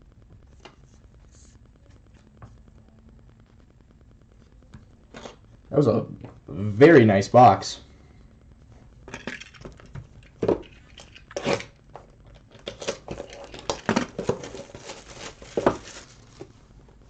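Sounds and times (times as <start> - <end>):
cardboard boxes rustling: 12.5 - 16.6.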